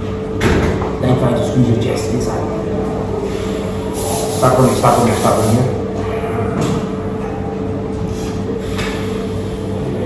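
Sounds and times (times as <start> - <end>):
mechanical hum: 0.0 - 10.0.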